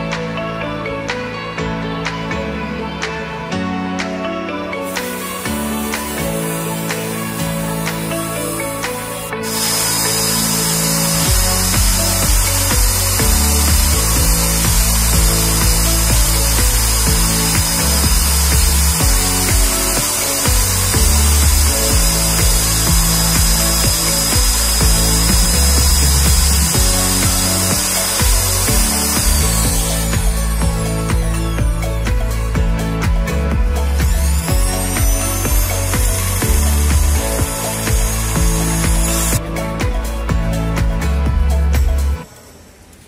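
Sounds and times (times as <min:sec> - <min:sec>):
background music with beat: 0:00.0 - 0:42.3
electric drill whining: 0:04.8 - 0:39.4.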